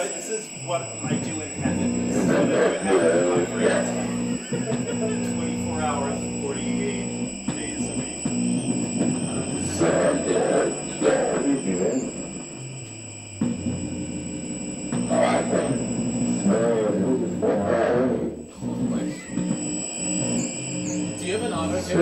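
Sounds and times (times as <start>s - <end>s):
voice: 0.0s - 8.4s, 9.2s - 12.2s, 15.0s - 19.2s, 21.2s - 22.0s.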